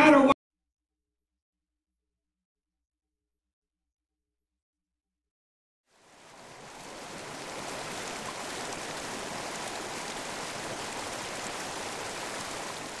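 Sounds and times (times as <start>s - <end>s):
running water rushing: 5.9s - 13.0s.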